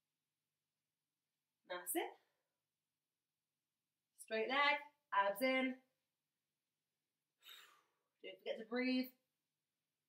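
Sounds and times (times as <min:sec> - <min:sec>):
woman breathing out: 0:07.4 - 0:08.0.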